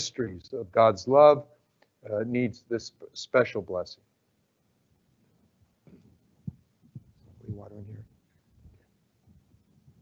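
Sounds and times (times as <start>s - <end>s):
soft footsteps thumping: 5.8s - 7.7s.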